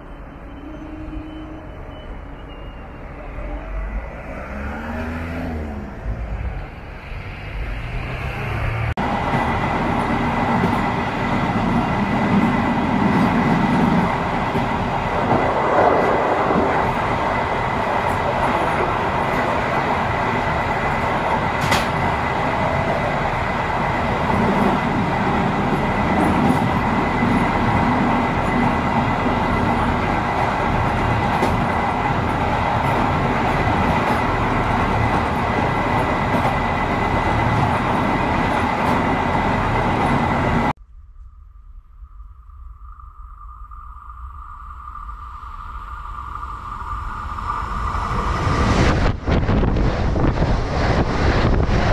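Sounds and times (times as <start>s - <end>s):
train wheels rumbling on rails: 5.4s - 40.8s
high whine: 40.3s - 51.9s.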